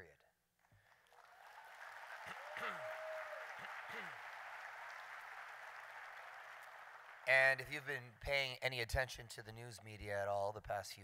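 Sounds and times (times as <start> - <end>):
audience applauding: 0.8 - 8.0
crowd cheering: 1.0 - 7.9.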